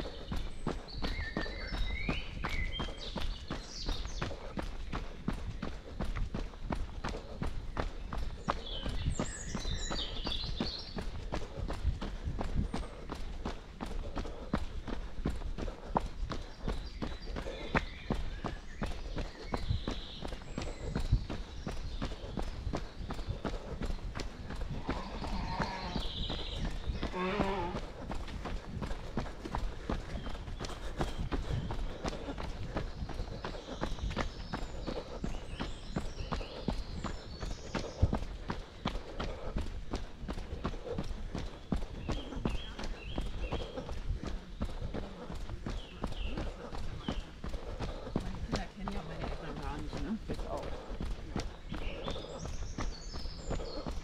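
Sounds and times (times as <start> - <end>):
birds chirping: 0.0 - 54.0
runner breathing: 0.0 - 54.0
running footsteps on dirt path: 0.0 - 54.0.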